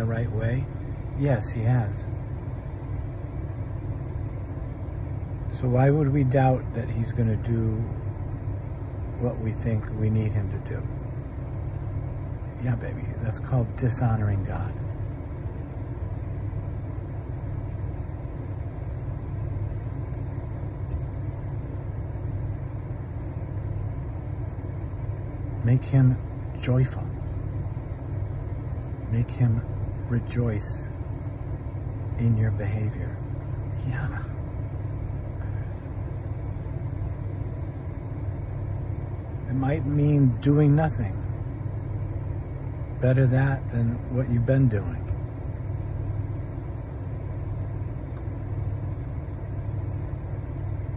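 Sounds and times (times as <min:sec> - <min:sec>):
car cabin rumble and hiss: 0:00.0 - 0:50.9.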